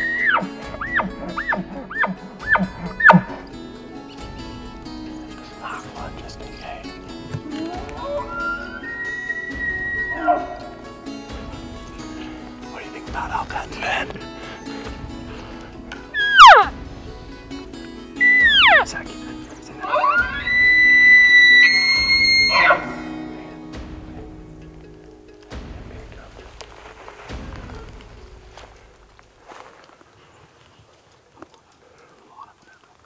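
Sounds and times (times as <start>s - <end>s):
elk bugling: 0.0s - 25.4s
background music: 0.0s - 30.0s.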